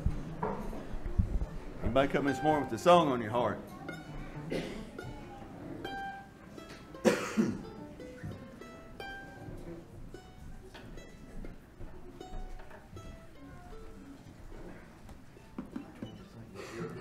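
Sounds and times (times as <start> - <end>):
acoustic guitar picking notes: 0.0 - 15.0
mandolin picking notes: 0.0 - 16.5
person coughing: 4.5 - 5.0, 7.0 - 7.7.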